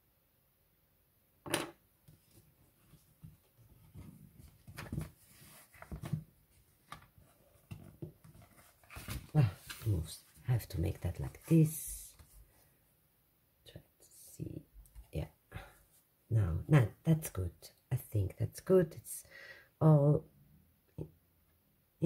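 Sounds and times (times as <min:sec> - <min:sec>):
soft rustles and taps of handling: 0:02.0 - 0:09.9.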